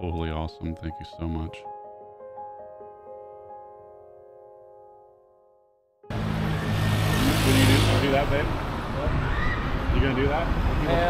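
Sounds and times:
car passing: 0:06.1 - 0:11.0.

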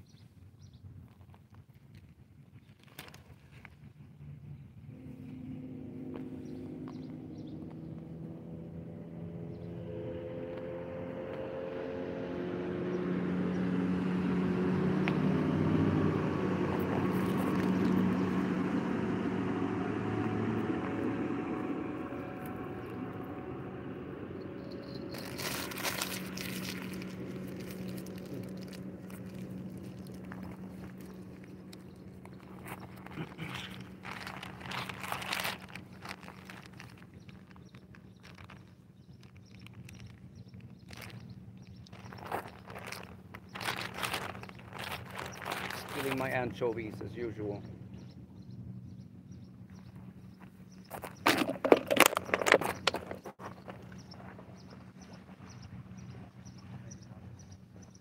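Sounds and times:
motorboat engine hum: 0:02.8 - 0:58.0
close crunching clicks: 0:24.6 - 0:46.5.

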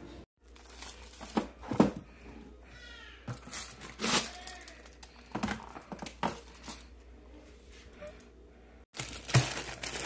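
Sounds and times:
bread bag rustling: 0:08.9 - 0:10.0.

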